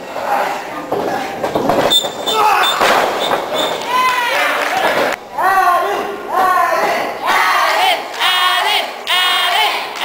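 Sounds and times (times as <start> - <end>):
high thin squeal: 1.8 - 4.0
people shouting: 2.2 - 3.2, 3.8 - 4.7.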